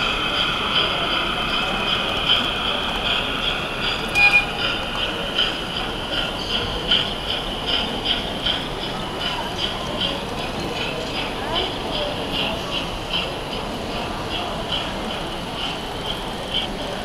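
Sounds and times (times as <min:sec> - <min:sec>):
model steam locomotive running: 0:00.0 - 0:17.0
brief high tone: 0:04.2 - 0:04.6.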